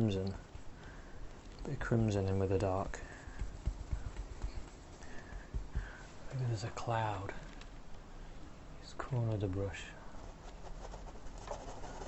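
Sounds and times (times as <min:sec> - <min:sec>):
tool tapping on palette: 0:03.0 - 0:06.0.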